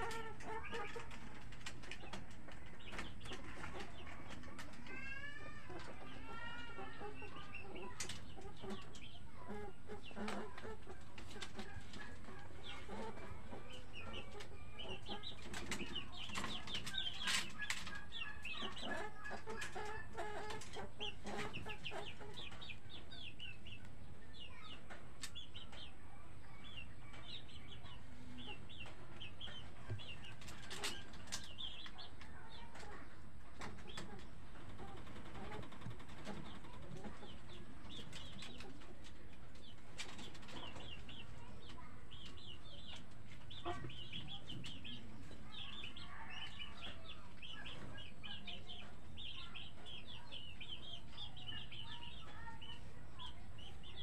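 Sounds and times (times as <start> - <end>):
chickens clucking: 0.0 - 54.0
small birds chirping: 0.0 - 54.0.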